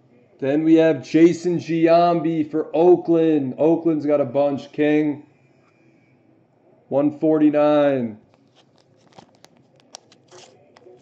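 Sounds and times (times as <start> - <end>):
cards rustling: 8.2 - 11.0
trading cards clicking: 8.3 - 11.0.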